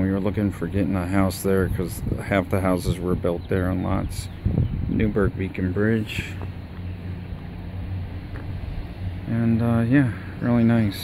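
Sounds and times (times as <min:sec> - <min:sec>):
low mechanical hum: 0:00.0 - 0:11.0
outdoor background noise: 0:00.0 - 0:11.0.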